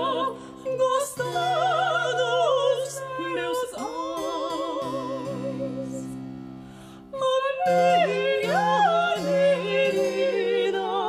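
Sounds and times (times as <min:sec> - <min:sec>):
classical guitar: 0:00.0 - 0:06.6
spinet: 0:00.0 - 0:11.0
two women singing classical duet: 0:00.0 - 0:11.0.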